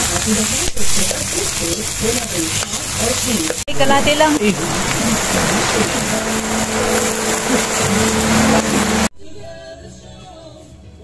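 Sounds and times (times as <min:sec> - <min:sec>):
vegetables sizzling in a wok: 0:00.0 - 0:09.1
soft music with singing: 0:04.4 - 0:11.0.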